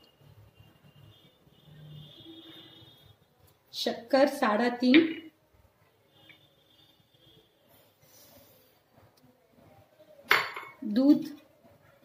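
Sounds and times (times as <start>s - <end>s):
glass bowl clinking: 10.3s - 10.8s.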